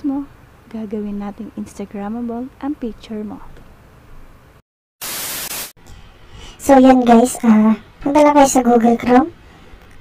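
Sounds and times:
burst of white-noise static: 5.0s - 5.8s.

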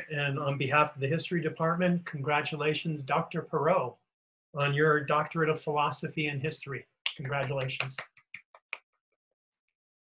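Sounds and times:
person clapping hands: 7.1s - 8.9s.

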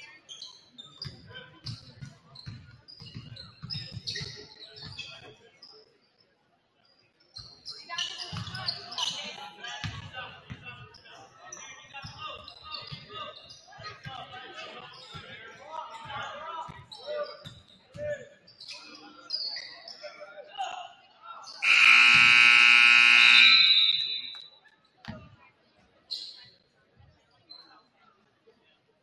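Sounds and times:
voices in a gym: 0.0s - 29.0s
scoreboard buzzer: 21.6s - 24.4s.

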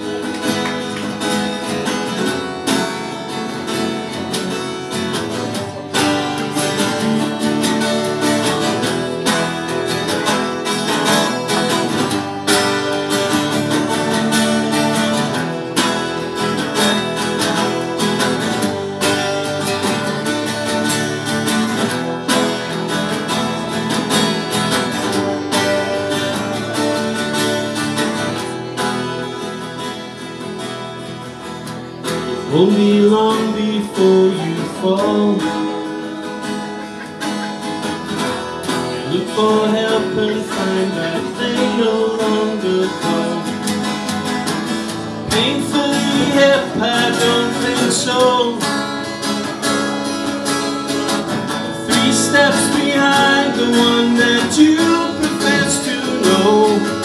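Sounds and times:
two guitars playing: 0.0s - 57.0s.

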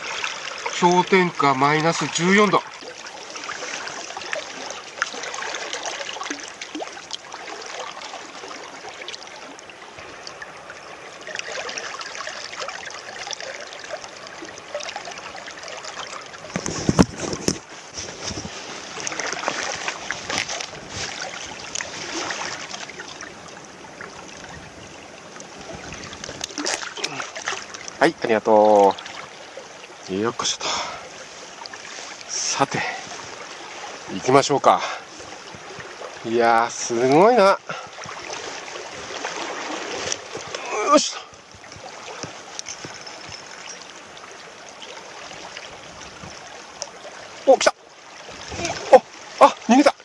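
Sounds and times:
river water splashing over rocks: 0.0s - 50.0s.

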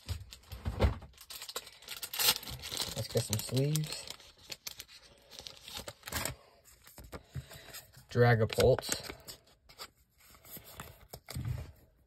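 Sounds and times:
plastic sleeves rustling: 0.0s - 12.0s.

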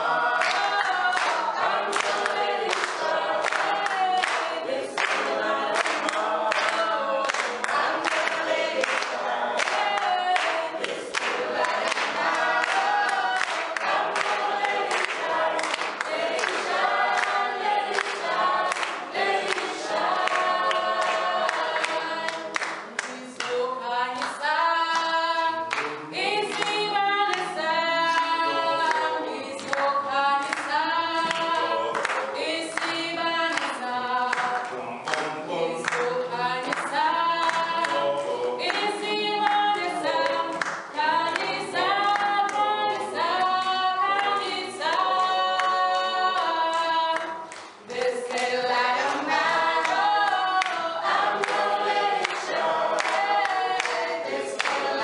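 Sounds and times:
group singing a cappella: 0.0s - 55.0s
hand-clapping: 0.1s - 55.0s.

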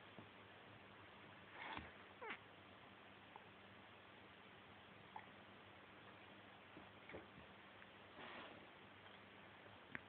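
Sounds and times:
kitten mewing: 2.2s - 2.4s.

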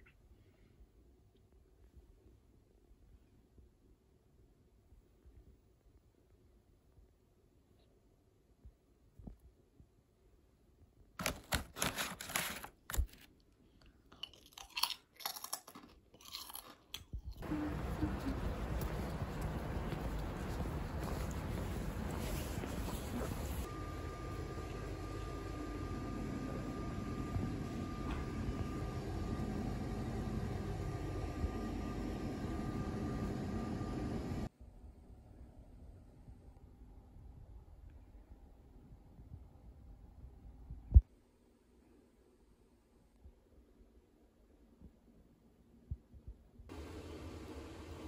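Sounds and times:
crunchy food being chewed: 13.8s - 21.4s
faint high hum: 17.3s - 48.0s
steady rumbling noise: 17.4s - 34.5s.

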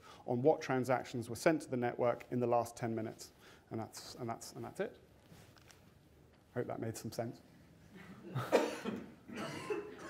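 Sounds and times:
person coughing: 8.3s - 10.0s.

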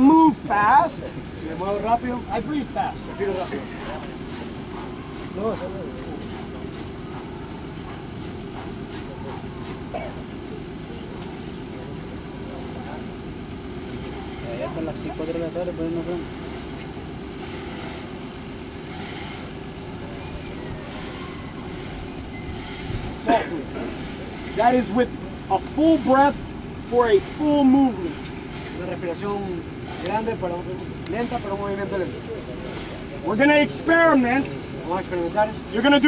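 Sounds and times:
engine running hum: 0.0s - 36.0s
faint voices: 0.0s - 36.0s.

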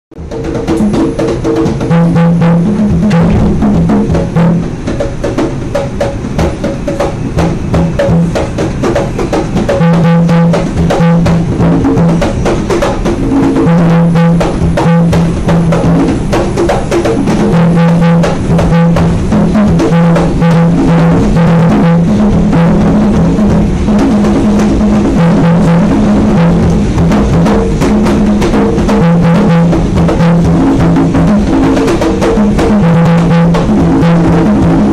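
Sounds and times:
conga drums played by hand: 0.2s - 34.9s
held low tone: 2.0s - 4.9s, 17.6s - 31.8s.

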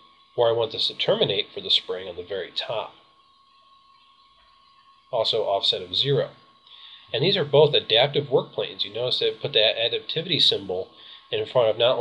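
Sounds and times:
faint recording hiss: 0.0s - 12.0s
thin high tone: 0.0s - 12.0s.

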